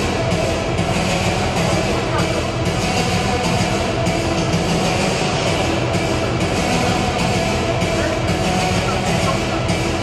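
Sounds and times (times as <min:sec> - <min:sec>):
arena music: 0:00.0 - 0:10.0
crowd noise: 0:00.0 - 0:10.0.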